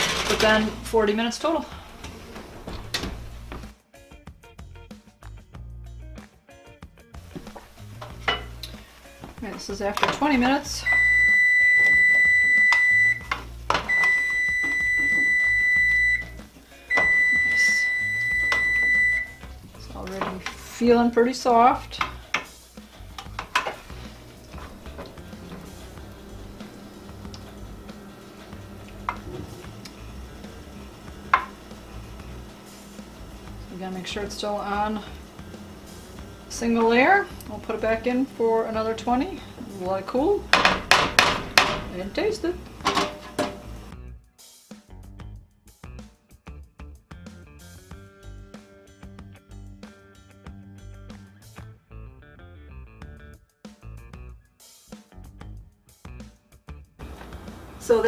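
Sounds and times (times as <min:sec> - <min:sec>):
knocks against pan: 0:40.5 - 0:41.9
oven door shutting clunk: 0:42.8 - 0:43.7.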